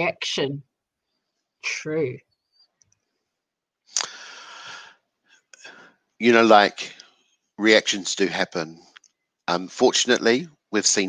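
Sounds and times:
person breathing into microphone: 4.0 - 5.0.

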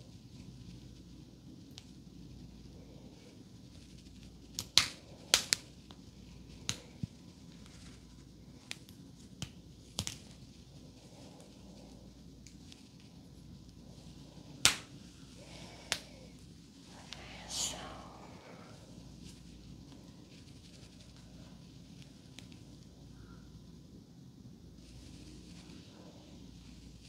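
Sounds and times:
hair rustling: 0.0 - 22.9, 24.8 - 27.0
sharp clicks and snaps: 4.5 - 5.6, 6.6 - 6.9.

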